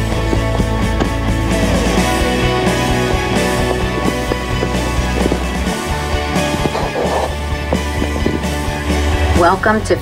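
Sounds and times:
background music with steady beat: 0:00.0 - 0:10.0
sustained bass line: 0:00.0 - 0:10.0.

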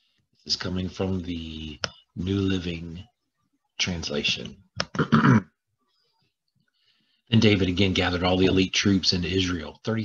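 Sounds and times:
man clearing his throat: 0:04.9 - 0:05.6.

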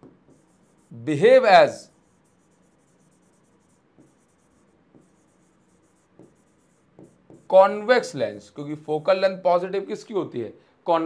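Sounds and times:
stylus scratching on touchscreen: 0:00.0 - 0:08.1.

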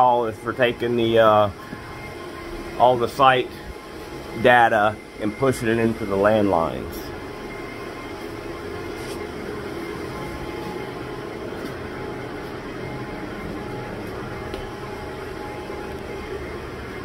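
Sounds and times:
cooling fans humming: 0:00.0 - 0:17.0.

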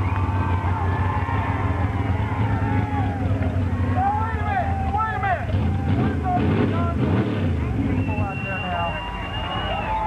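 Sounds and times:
people's voices: 0:00.0 - 0:10.0
truck engine running: 0:00.0 - 0:10.0.

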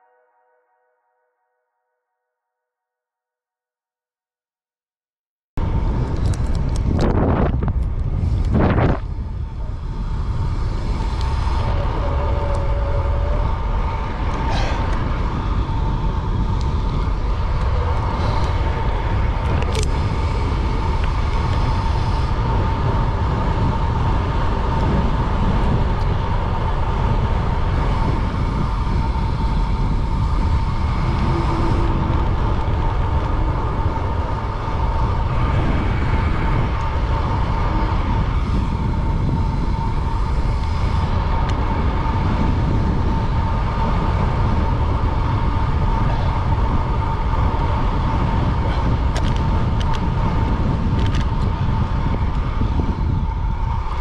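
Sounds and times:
steady high whine: 0:05.6 - 0:54.0
tyre noise on asphalt: 0:05.6 - 0:54.0
wind on microphone: 0:05.6 - 0:54.0.

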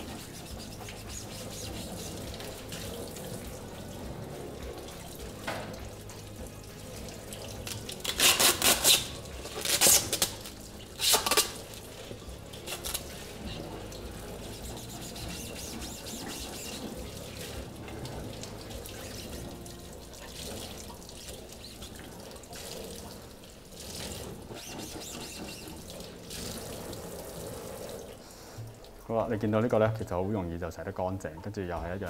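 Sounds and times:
tap water splashing into metal sink: 0:00.0 - 0:29.1.

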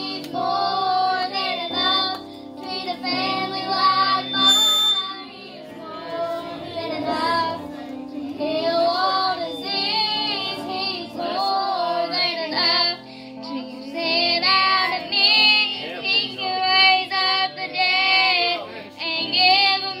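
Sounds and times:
girls singing gospel song: 0:00.0 - 0:20.0.

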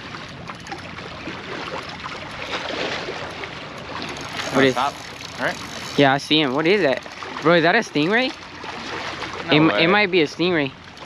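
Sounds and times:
water at shoreline: 0:00.0 - 0:11.0
wind: 0:00.0 - 0:11.0.

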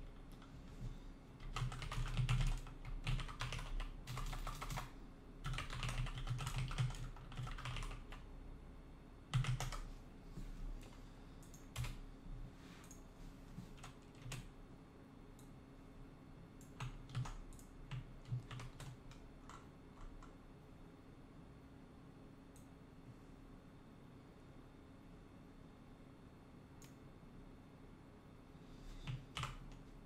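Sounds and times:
computer keyboard keys clicking: 0:01.4 - 0:08.2, 0:09.3 - 0:09.9, 0:10.8 - 0:12.0, 0:13.8 - 0:14.5, 0:16.6 - 0:20.4, 0:29.0 - 0:29.8.

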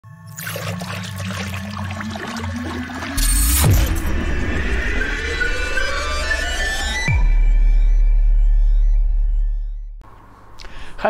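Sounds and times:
liquid pouring and swirling effect: 0:00.1 - 0:07.0
low musical drone: 0:01.8 - 0:09.8.

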